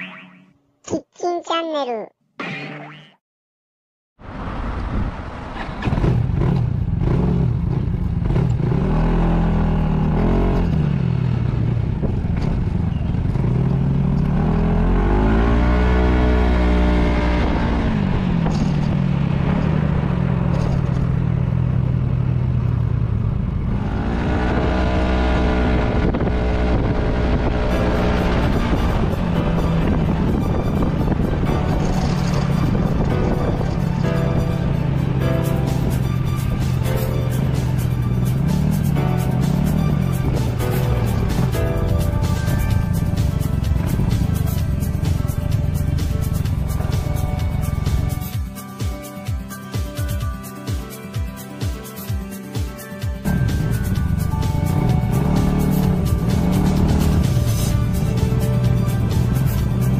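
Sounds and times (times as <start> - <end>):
scooter engine accelerating: 5.3 - 48.4, 53.2 - 59.9
wind on microphone: 25.6 - 34.5.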